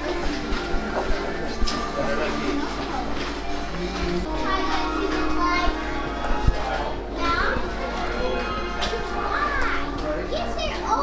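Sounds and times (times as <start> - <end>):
murmur of voices: 0.0 - 11.0
soft music: 0.0 - 11.0
children chattering and squealing: 4.2 - 11.0.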